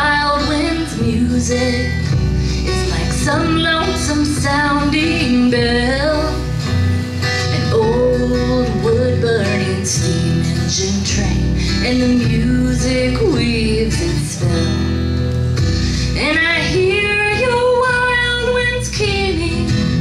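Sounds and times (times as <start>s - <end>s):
strummed acoustic guitar: 0.0s - 20.0s
upright bass: 0.0s - 20.0s
woman singing a ballad: 0.0s - 20.0s.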